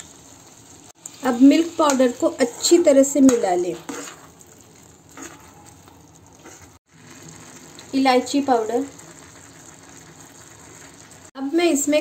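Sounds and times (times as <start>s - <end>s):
food faintly sizzling in pan: 0.0s - 12.0s
soft spatula scrapes: 3.7s - 4.4s, 6.4s - 6.8s.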